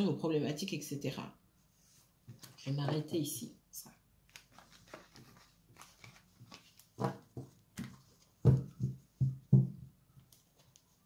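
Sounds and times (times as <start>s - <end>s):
cards being handled: 4.3s - 8.8s
cards thumping on table: 7.0s - 9.8s.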